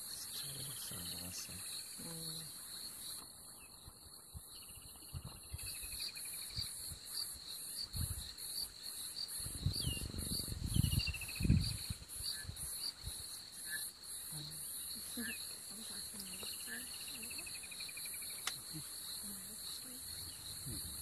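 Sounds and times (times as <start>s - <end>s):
crickets chirping: 0.0s - 21.0s.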